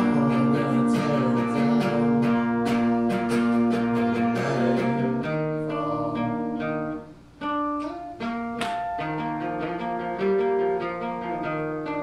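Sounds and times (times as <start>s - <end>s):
acoustic guitar notes picked: 0.0s - 12.0s
hard guitar strum: 0.0s - 12.0s.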